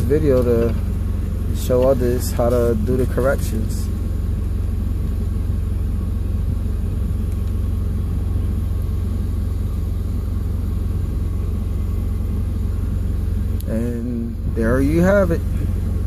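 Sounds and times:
truck engine idling: 0.0 - 16.0.

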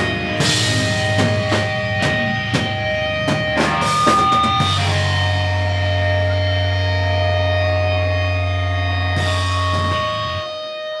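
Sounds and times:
sustained guitar and bass chord: 0.0 - 10.6
drums: 0.0 - 11.0.

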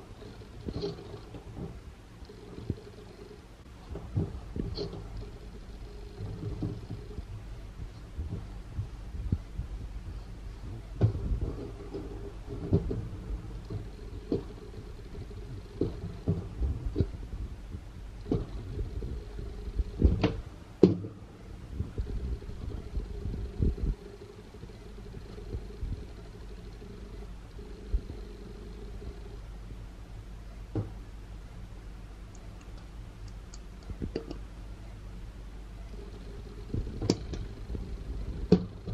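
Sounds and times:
low rumble: 0.0 - 38.9.

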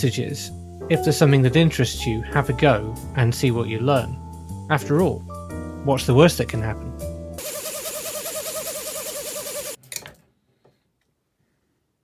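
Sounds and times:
electric motors whirring: 7.4 - 9.8.

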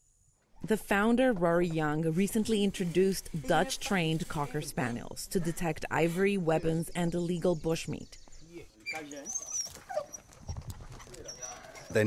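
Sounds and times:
dogs making excited sounds: 8.9 - 12.0.

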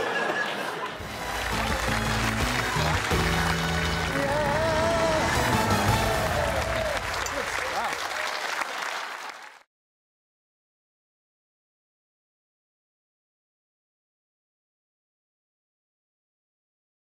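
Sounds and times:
audience applause: 0.0 - 9.7
theme music with bass line: 1.0 - 7.7.

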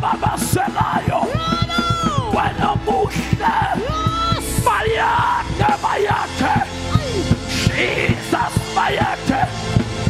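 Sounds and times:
music with fast steady beat: 0.0 - 10.0.

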